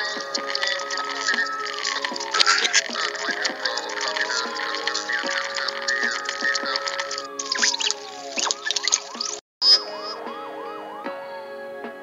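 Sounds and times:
emergency siren wailing and yelping: 0:00.0 - 0:11.5.

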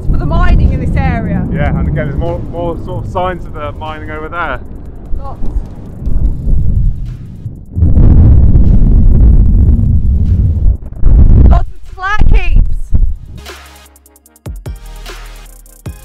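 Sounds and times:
wind buffeting microphone: 0:00.0 - 0:13.4
music: 0:00.0 - 0:16.0.

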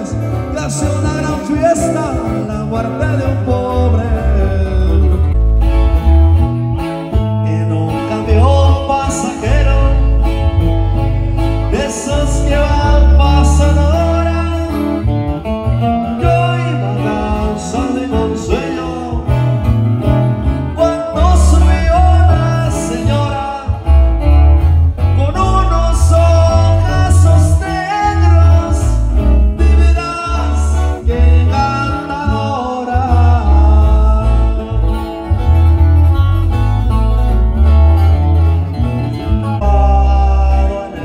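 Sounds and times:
acoustic guitars playing: 0:00.0 - 0:41.0
bass guitar line: 0:00.0 - 0:41.0.

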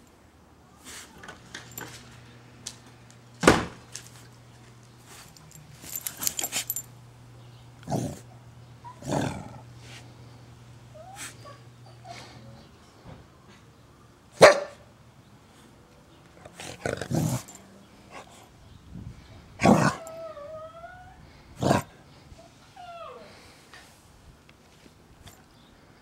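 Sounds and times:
dog whining: 0:10.9 - 0:12.6, 0:19.6 - 0:21.8
dog barking: 0:14.4 - 0:14.8.

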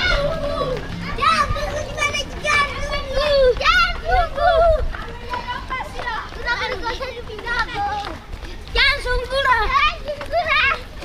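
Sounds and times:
low rumble: 0:00.0 - 0:05.2
children shouting: 0:00.0 - 0:11.0.

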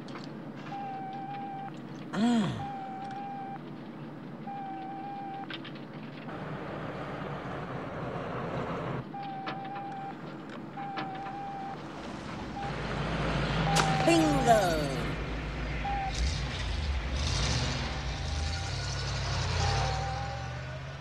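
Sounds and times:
van driving: 0:00.0 - 0:21.0
short electronic beeps: 0:02.6 - 0:03.6, 0:04.5 - 0:05.5, 0:10.8 - 0:11.8, 0:13.6 - 0:15.1, 0:15.8 - 0:16.2, 0:19.6 - 0:20.6.

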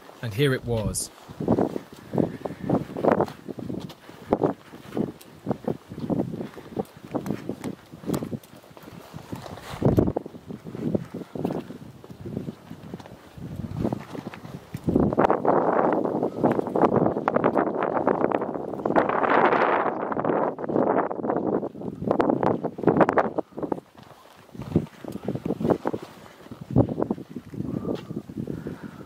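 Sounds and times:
footsteps on bare rock: 0:00.0 - 0:29.0.

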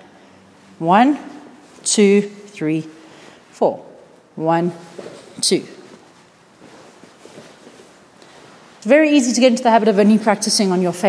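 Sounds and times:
rustling of cotton uniform: 0:04.8 - 0:09.2.

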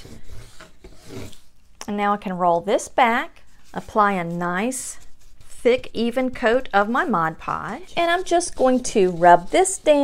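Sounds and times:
fabric rubbed onto cardboard: 0:00.0 - 0:01.6, 0:03.4 - 0:05.9, 0:07.3 - 0:10.0.

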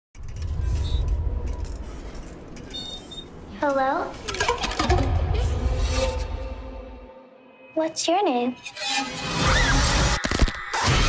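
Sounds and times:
deep rumble: 0:00.2 - 0:07.2.

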